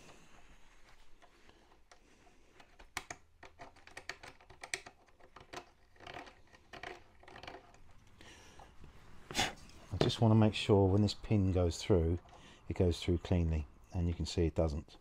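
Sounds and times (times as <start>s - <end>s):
metal parts clicking and scraping: 0.8s - 8.2s.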